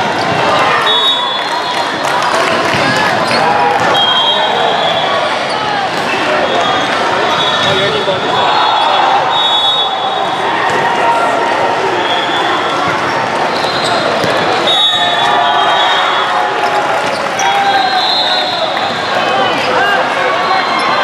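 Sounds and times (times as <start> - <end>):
crowd of voices in a hall: 0.0 - 21.0
volleyballs hit and bouncing: 2.0 - 4.0, 12.7 - 15.4.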